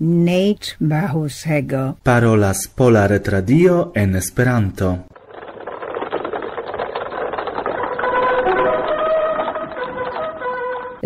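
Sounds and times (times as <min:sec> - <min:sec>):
rapid mechanical rattle: 0:05.1 - 0:11.0
tonal music: 0:07.7 - 0:11.0.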